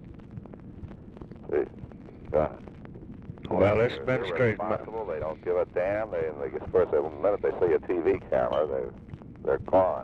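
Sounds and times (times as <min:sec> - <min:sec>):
recording hiss and crackle: 0:00.0 - 0:10.0
man speaking: 0:03.5 - 0:08.9.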